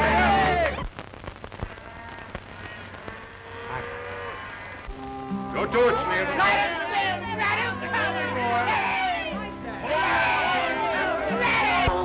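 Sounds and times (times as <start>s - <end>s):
crowd shouting: 0.0s - 0.8s, 5.6s - 12.0s
music with held notes: 4.9s - 12.0s.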